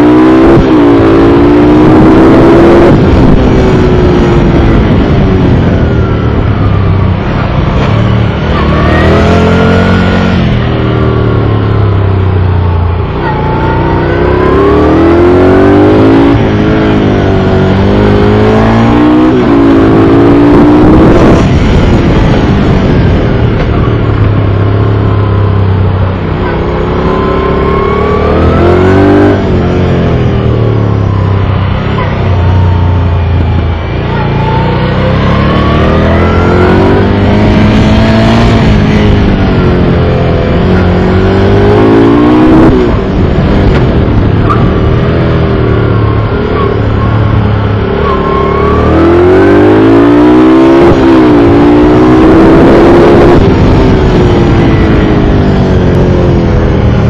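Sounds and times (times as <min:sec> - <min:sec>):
motorcycle engine revving: 0:00.0 - 0:57.0
wind rush: 0:00.0 - 0:57.0.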